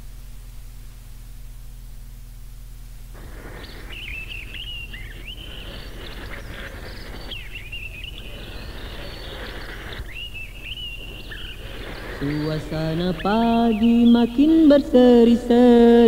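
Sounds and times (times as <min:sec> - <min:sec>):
outdoor background hiss: 0:00.0 - 0:16.0
bird twittering: 0:03.2 - 0:15.7.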